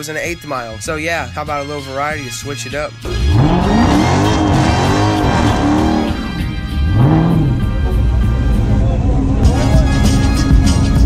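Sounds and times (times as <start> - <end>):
music with a beat: 0.0 - 11.0
car engine revving hard: 3.0 - 8.0.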